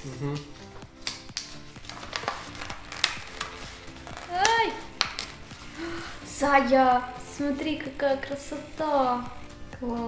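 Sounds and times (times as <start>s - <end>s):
soft background music: 0.0s - 10.0s
pens and paper clicking on table: 1.0s - 5.7s.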